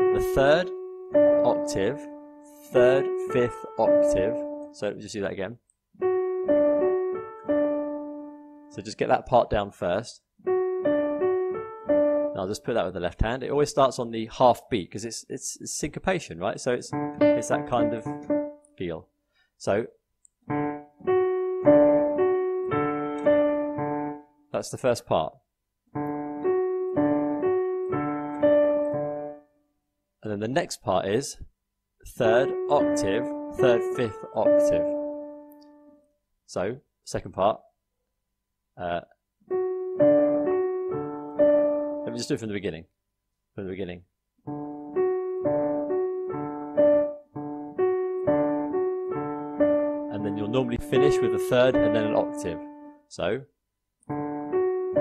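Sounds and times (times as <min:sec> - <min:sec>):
digital piano playing ragtime rhythm: 0:00.0 - 0:05.0, 0:06.0 - 0:09.2, 0:10.4 - 0:13.0, 0:16.5 - 0:18.7, 0:20.5 - 0:24.3, 0:26.0 - 0:29.4, 0:32.1 - 0:35.9, 0:39.5 - 0:42.4, 0:44.5 - 0:53.0, 0:54.1 - 0:55.0
ragtime piano: 0:16.9 - 0:18.6, 0:44.5 - 0:52.7.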